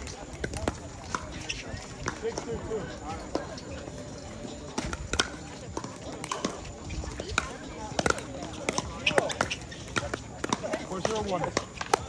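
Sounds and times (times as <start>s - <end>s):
distant voices: 0.0s - 12.0s
pickleball paddles striking ball: 4.8s - 12.0s.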